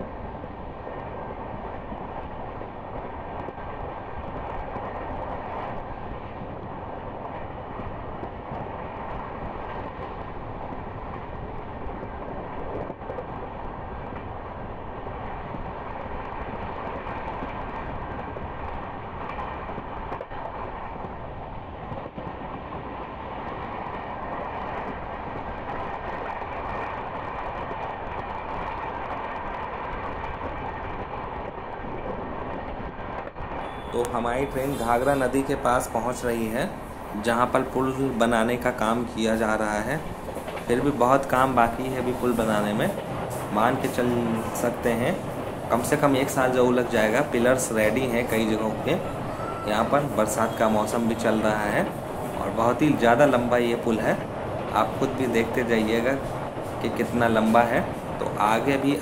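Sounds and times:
rushing air: 0.0 - 59.0
train wheels on rails: 0.0 - 59.0.

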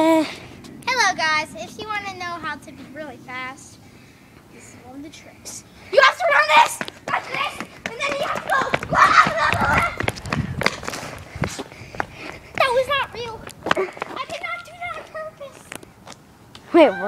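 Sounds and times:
children shouting: 6.0 - 10.1
feet running on asphalt: 6.0 - 16.2.

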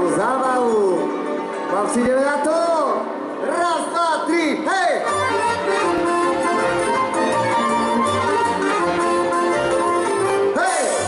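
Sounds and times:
live band with accordion: 5.0 - 11.0.

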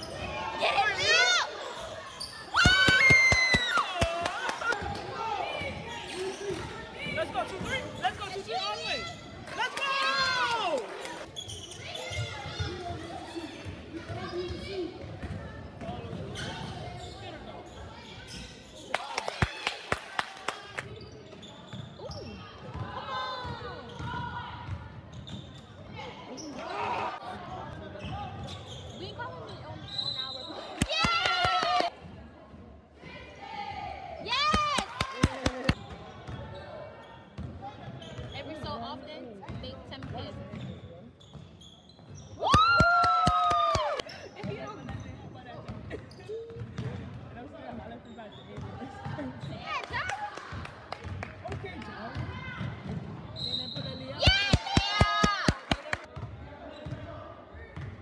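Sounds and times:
ball bouncing on wooden court: 14.1 - 16.4.

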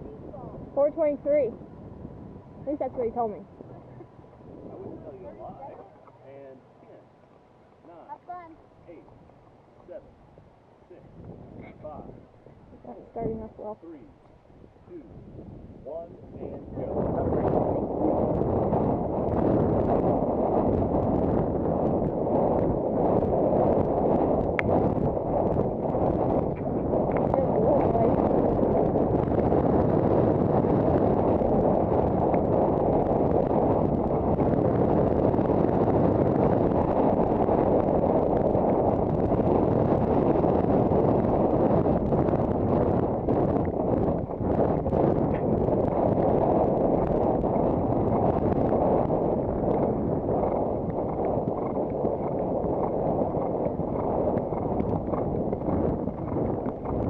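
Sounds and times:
wind buffeting microphone: 0.0 - 57.0
horse hoofbeats: 42.8 - 57.0.

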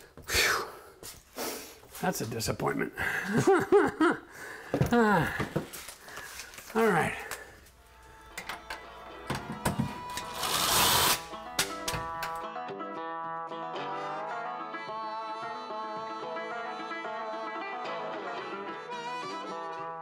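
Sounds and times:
music with plucked strings: 7.9 - 10.4, 11.2 - 20.0
cordless drill running: 9.9 - 11.4.

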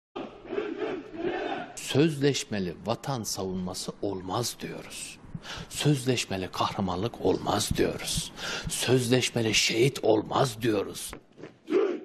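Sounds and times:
soldiers chanting in unison: 0.2 - 1.8.

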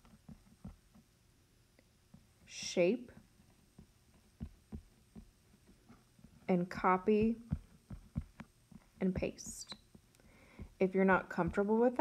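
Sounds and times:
stylus tapping on tablet screen: 3.5 - 12.0.

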